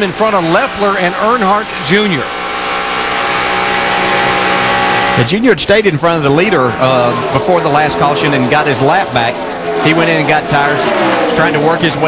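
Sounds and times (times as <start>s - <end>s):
race car engines at full throttle: 0.0s - 12.0s.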